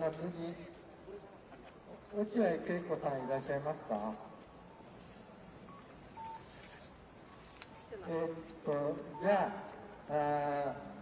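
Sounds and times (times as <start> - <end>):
faint outdoor background noise: 0.0 - 11.0
short electronic beep: 5.7 - 6.5.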